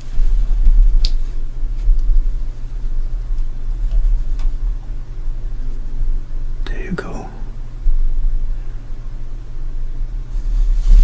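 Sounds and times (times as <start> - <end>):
low rumble and hum: 0.0 - 11.0.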